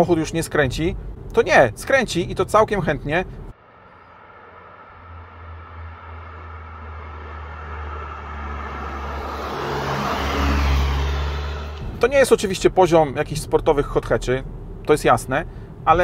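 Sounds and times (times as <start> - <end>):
car engine passing close: 0.4 - 16.0.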